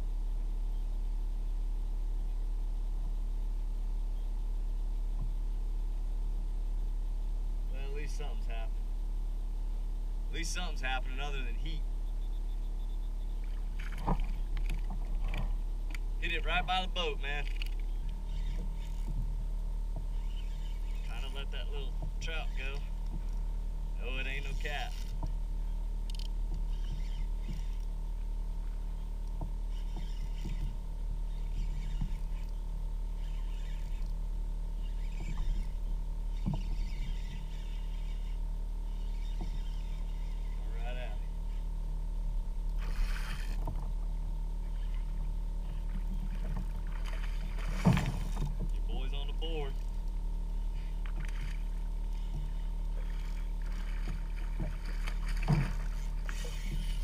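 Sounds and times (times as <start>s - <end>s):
steady low rumble: 0.0s - 57.0s.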